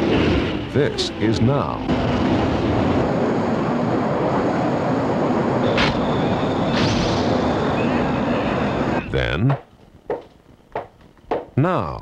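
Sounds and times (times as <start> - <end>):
explosion rumble: 0.0 - 9.1.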